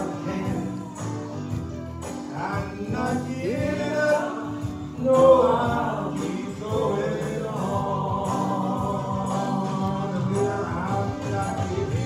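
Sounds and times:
instrumental backing: 0.0 - 12.0
man singing gospel song: 0.0 - 12.0.

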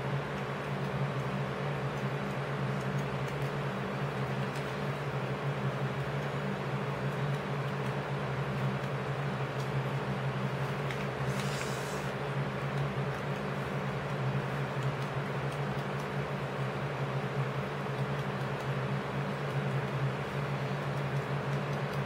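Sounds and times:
machine hum with hiss: 0.0 - 22.0.

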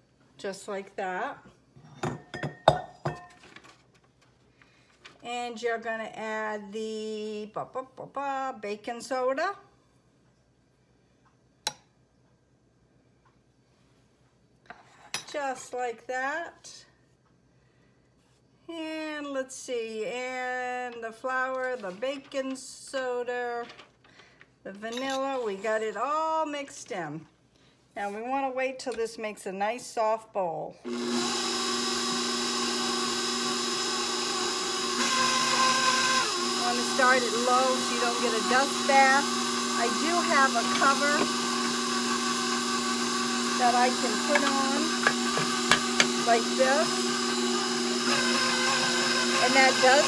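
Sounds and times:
stand mixer motor running: 30.9 - 50.0.

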